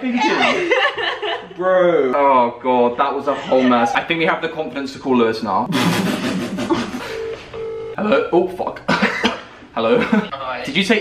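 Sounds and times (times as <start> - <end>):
laughter: 0.1 - 1.6, 5.7 - 7.1, 9.9 - 10.3
phone ringback tone: 7.0 - 8.0.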